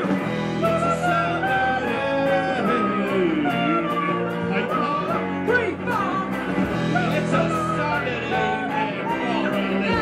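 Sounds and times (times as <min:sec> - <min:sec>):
rock band playing: 0:00.0 - 0:10.0
person singing wordless lines: 0:00.4 - 0:10.0.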